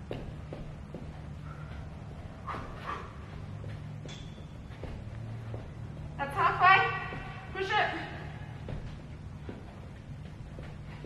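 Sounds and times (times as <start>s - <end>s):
feet tapping on floor: 0.0s - 7.7s, 8.5s - 11.0s
hard breathing: 1.2s - 3.5s.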